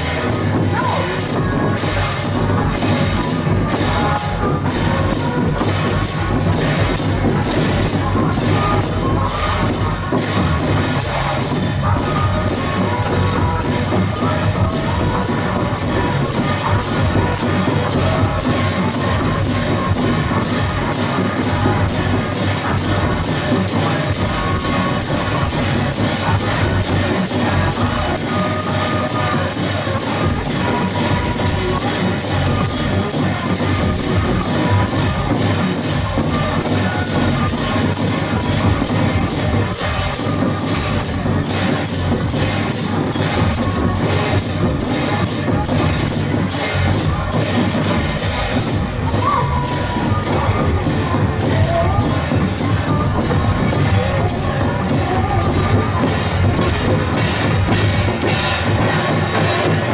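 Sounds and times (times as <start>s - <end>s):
hand cymbals crashing: 0.0s - 59.9s
large drums beaten with sticks: 0.0s - 59.9s.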